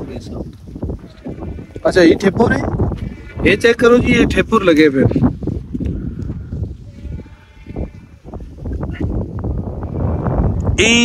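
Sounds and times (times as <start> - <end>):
farm livestock bleating: 1.0 - 2.2, 6.8 - 9.1.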